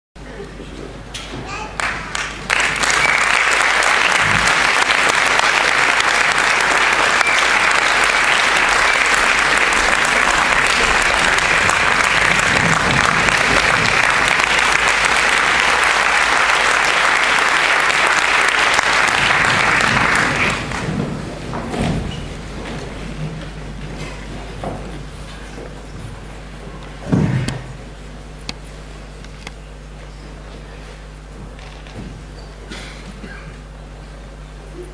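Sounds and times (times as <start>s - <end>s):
murmur of audience: 0.2s - 21.6s
audience applause: 1.8s - 21.4s.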